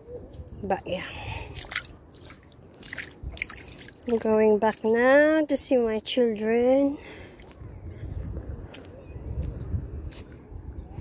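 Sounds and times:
footsteps splashing in shallow water: 1.4 - 5.4.

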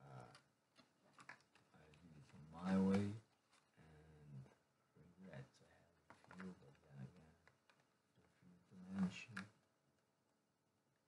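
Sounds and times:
faint low voice speaking: 8.3 - 9.5.

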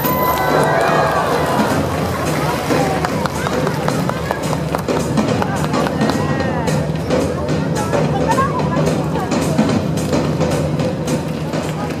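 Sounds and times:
dolphins splashing in pool: 0.0 - 6.2.

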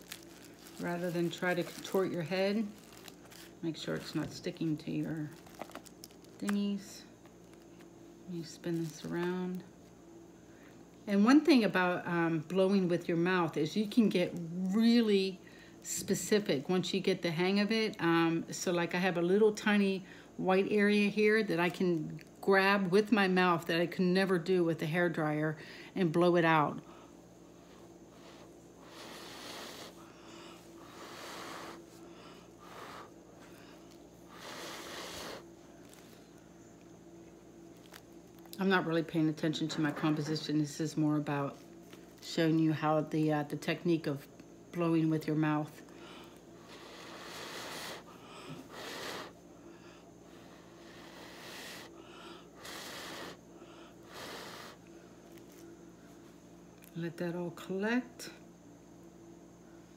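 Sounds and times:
faint steady hum: 0.0 - 59.9
soft puffs of breath: 26.8 - 36.5, 45.9 - 56.4
person blowing short puffs: 28.1 - 30.1, 34.3 - 36.0, 46.6 - 49.4, 52.6 - 53.4.

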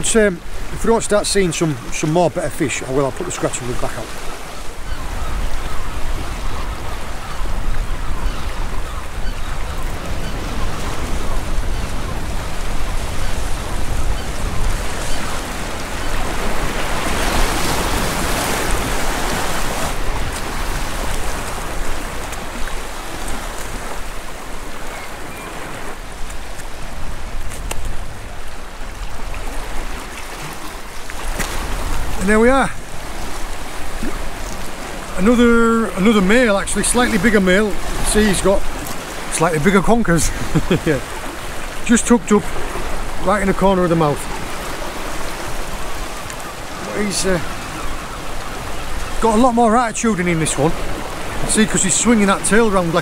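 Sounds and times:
sea waves washing over rocks: 0.0 - 6.4, 9.0 - 53.0.

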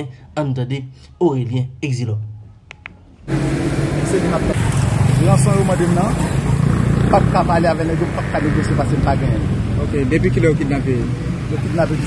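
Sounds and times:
vehicle engine running: 3.3 - 12.0
people talking: 4.0 - 12.0.

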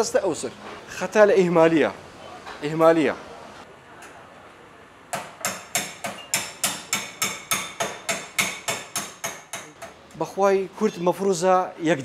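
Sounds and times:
hammer striking metal: 5.2 - 10.0.

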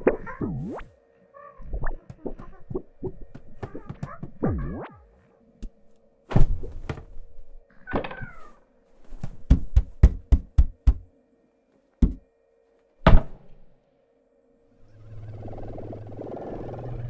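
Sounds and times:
faint steady hum: 0.0 - 17.0
comic thuds and knocks: 3.3 - 4.9, 13.0 - 13.4.

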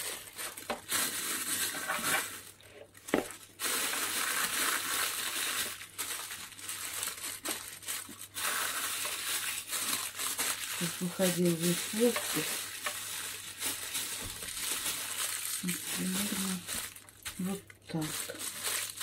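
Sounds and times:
plastic bag crinkling: 0.0 - 19.0.

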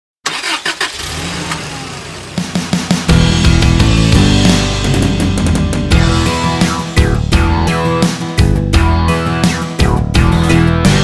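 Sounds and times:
car engine cranking and starting: 0.2 - 4.2.

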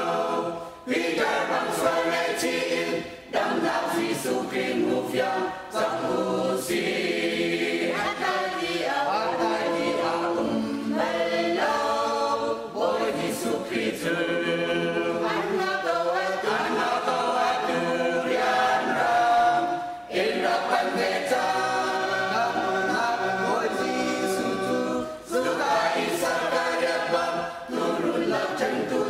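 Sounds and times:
choir singing unaccompanied: 0.0 - 29.0.

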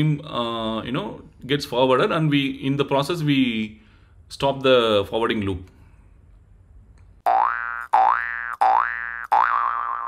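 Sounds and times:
cartoon springy boings: 7.2 - 10.0.

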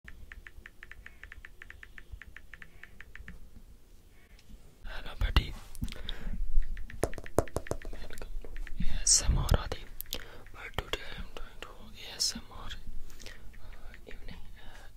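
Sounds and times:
fingertip taps on phone screen: 0.1 - 3.4, 6.6 - 8.9.

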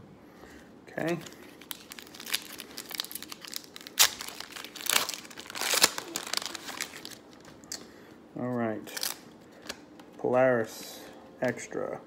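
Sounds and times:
foil wrapper crinkling and tearing: 1.2 - 7.6, 8.9 - 9.2.

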